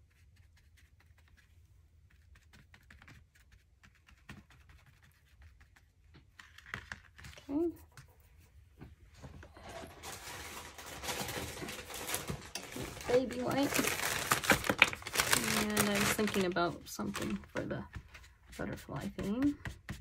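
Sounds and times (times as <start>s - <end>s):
plastic packet crinkling: 9.6s - 17.6s.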